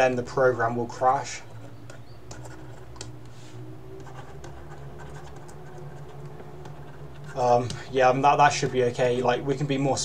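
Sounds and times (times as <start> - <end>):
low steady hum: 0.0 - 10.0
stylus scratching on tablet: 0.6 - 9.4.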